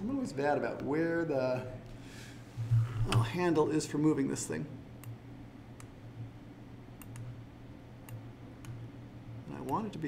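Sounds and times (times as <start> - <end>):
steady low hum: 0.0 - 10.0
computer mouse clicks: 7.0 - 7.4, 8.0 - 8.8.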